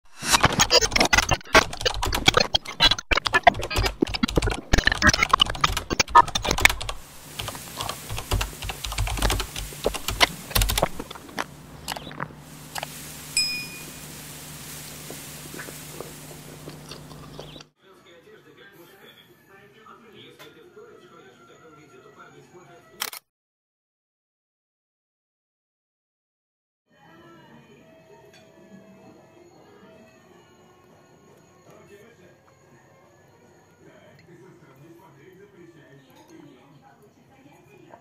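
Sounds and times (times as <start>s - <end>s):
crackling sticky eating clicks: 0.1s - 17.7s
low steady hum: 6.4s - 17.6s
short high ping: 13.4s - 13.9s.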